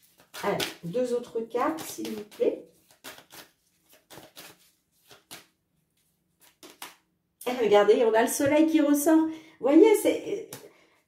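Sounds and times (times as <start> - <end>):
cards being shuffled: 0.0 - 0.9, 1.6 - 7.1.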